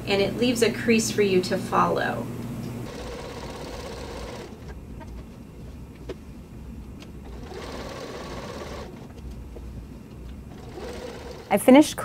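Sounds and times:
sewing machine running: 2.8 - 4.8, 7.2 - 9.2, 10.4 - 11.8.

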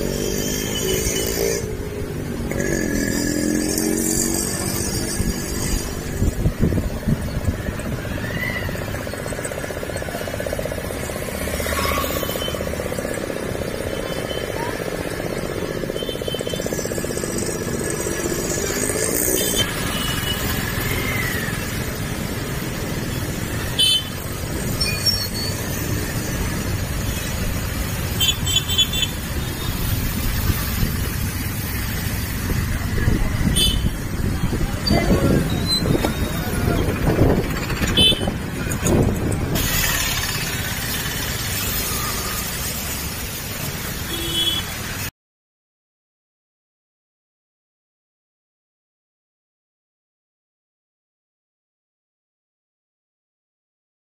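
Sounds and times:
road noise on wet street: 0.0 - 45.1
voices: 32.2 - 39.6.

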